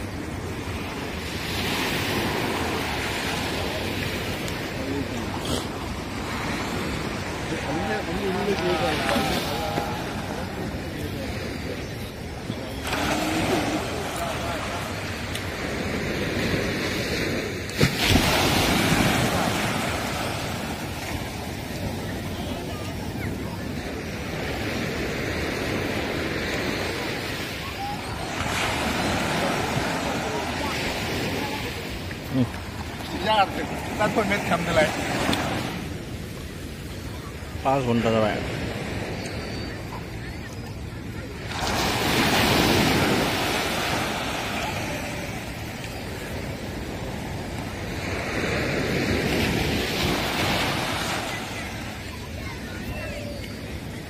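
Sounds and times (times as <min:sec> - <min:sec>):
waves breaking on beach: 0:00.0 - 0:54.0
people talking: 0:03.4 - 0:05.9, 0:07.1 - 0:15.3, 0:21.2 - 0:25.0, 0:25.7 - 0:35.8, 0:39.3 - 0:47.7, 0:49.9 - 0:54.0.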